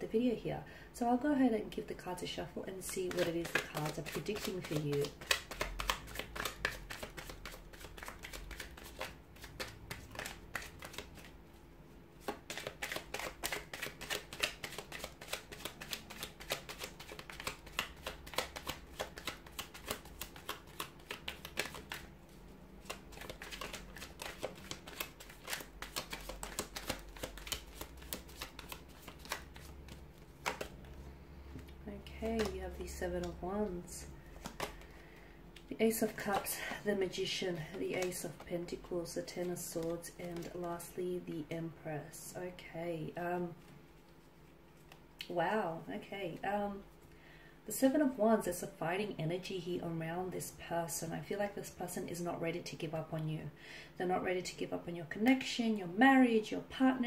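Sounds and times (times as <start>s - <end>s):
cards being shuffled: 2.8s - 11.4s, 12.2s - 33.4s, 34.3s - 35.0s, 37.6s - 38.4s, 39.3s - 40.7s.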